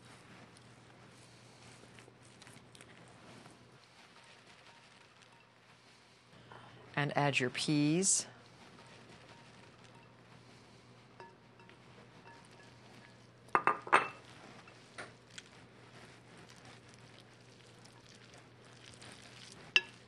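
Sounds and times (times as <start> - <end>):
pasta tossed with wooden spoon: 0.0 - 6.3, 8.4 - 13.3, 14.2 - 20.0
kitchenware clinks: 13.6 - 14.2.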